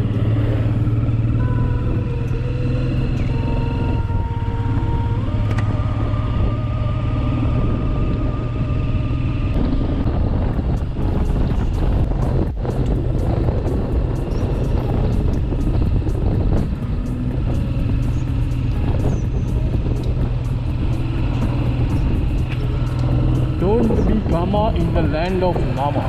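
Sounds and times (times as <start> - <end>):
motorcycle engine cruising: 0.0 - 26.0
road noise: 0.0 - 26.0.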